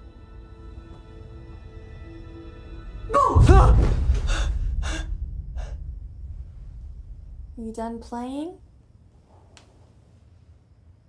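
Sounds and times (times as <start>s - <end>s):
low steady rumble: 3.4s - 10.8s.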